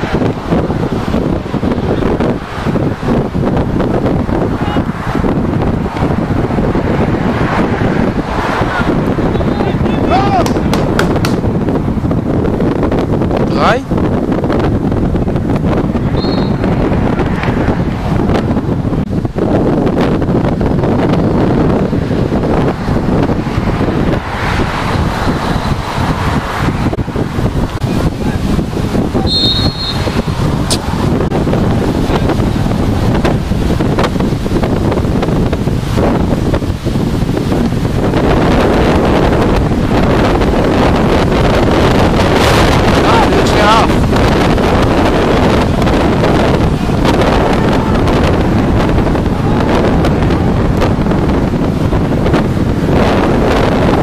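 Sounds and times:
wind buffeting microphone: 0.0 - 54.0
referee's whistle: 16.2 - 16.6, 29.2 - 30.2.

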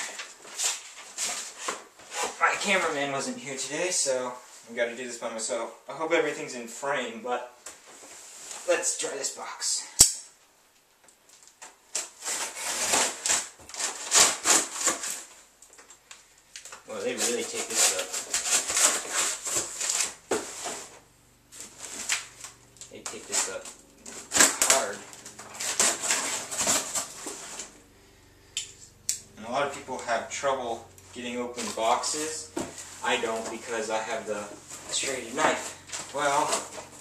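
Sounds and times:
sharp click: 10.0 - 10.3
knife slitting packing tape: 11.9 - 15.3, 17.2 - 20.2, 24.1 - 27.6
cardboard flaps tearing open: 11.9 - 15.5, 17.2 - 20.8, 21.6 - 27.7.

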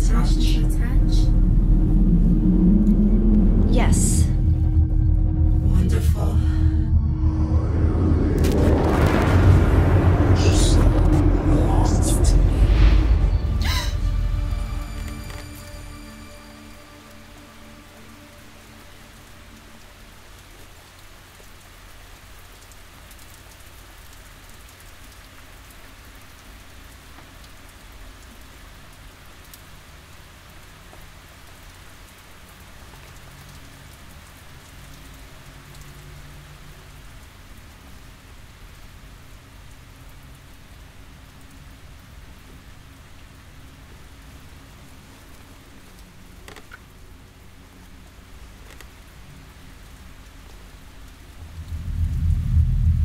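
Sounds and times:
low rumble: 0.0 - 20.4, 50.7 - 53.0.

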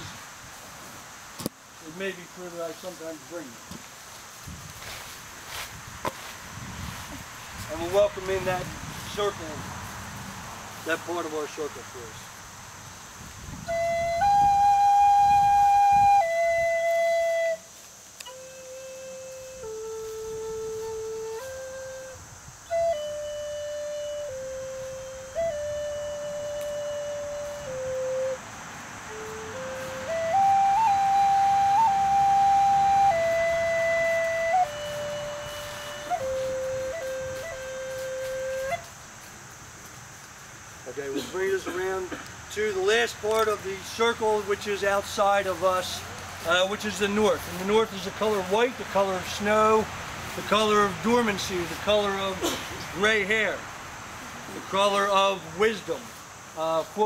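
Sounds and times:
wooden flute melody: 13.6 - 39.0.

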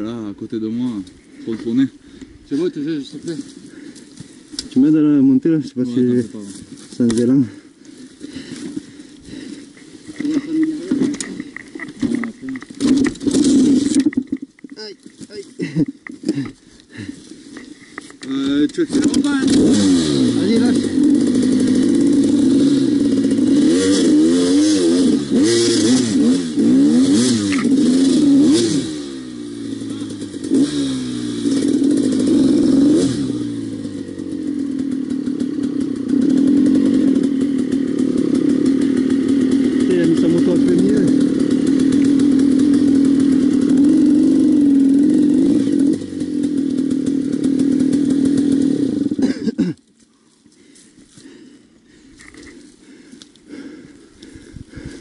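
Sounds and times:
dirt bike engine revving: 2.7 - 14.4, 15.1 - 49.7.

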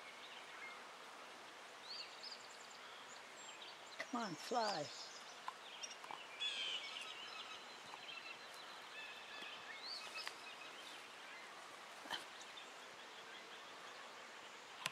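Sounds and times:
songbirds chirping: 0.0 - 14.9.

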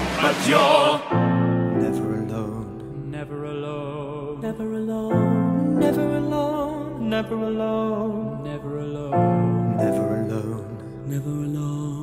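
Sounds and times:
male choir singing chords: 0.0 - 2.8.

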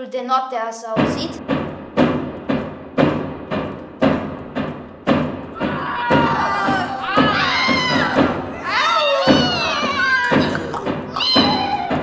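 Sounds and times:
deep drum beating: 1.0 - 12.0
children shouting: 5.6 - 12.0.

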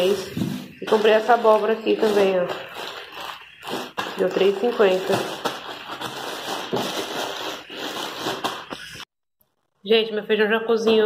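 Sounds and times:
plastic bag crinkling: 0.0 - 9.1.

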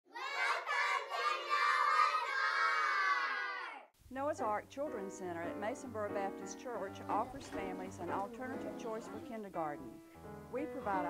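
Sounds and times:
children shouting in unison: 0.1 - 3.9.

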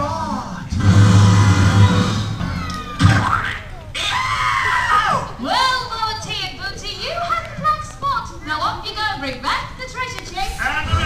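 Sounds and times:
sudden hit: 0.7 - 3.5
long high held cry: 1.4 - 5.8.

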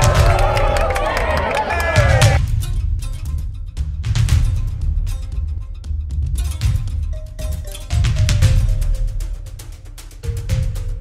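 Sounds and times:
music with heavy bass beat: 0.0 - 1.0, 1.9 - 11.0
crowd cheering and yelling: 0.0 - 2.4.

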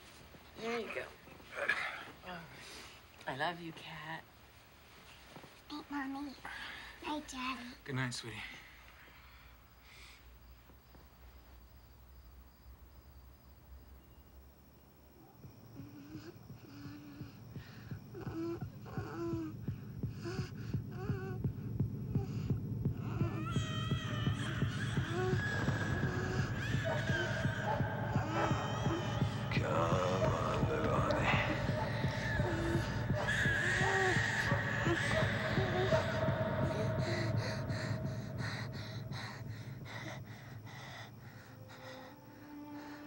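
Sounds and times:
heartbeat-like pulse: 15.4 - 42.0
whimpering cries: 15.8 - 21.5, 22.1 - 43.0
girl gasping breaths: 30.8 - 43.0.

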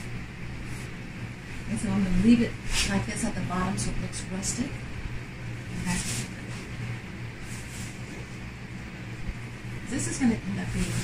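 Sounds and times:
machine humming: 0.0 - 11.0.

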